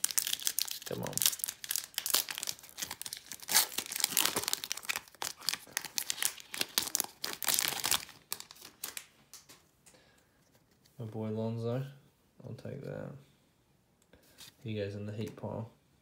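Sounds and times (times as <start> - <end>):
foil wrapper tearing and crinkling: 0.0 - 9.1.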